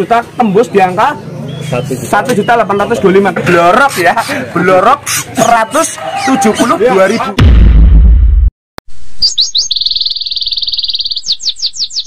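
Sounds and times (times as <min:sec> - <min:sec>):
deep boom: 0:07.4 - 0:08.5
songbird whistles and trills: 0:09.2 - 0:12.0.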